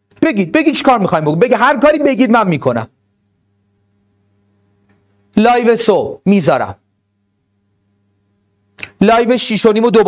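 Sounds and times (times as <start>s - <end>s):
faint steady hum: 0.0s - 10.0s
man speaking: 0.2s - 2.9s, 5.4s - 6.8s, 9.0s - 10.0s.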